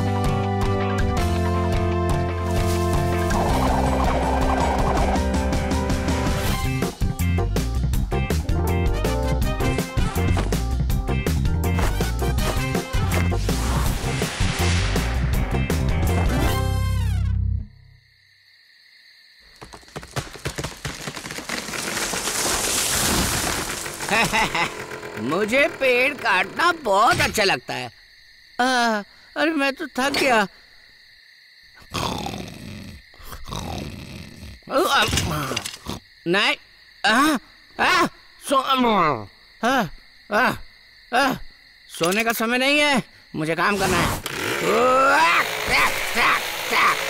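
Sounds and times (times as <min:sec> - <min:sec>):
owl-like hooting: 0:03.2 - 0:05.4
rustling branches rush: 0:13.3 - 0:15.5, 0:19.8 - 0:24.4.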